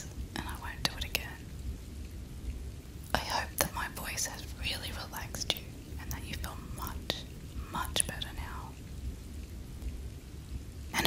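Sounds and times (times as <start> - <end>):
low rumble: 0.0 - 11.0
steady rain falling: 0.0 - 11.0.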